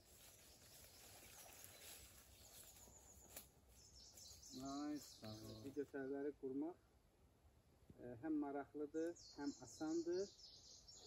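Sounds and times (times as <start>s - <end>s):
faint bird chirps: 0.0s - 6.3s, 9.0s - 11.0s.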